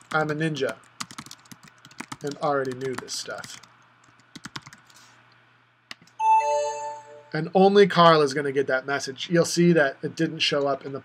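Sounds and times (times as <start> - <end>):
chat notification chime: 6.2 - 7.5.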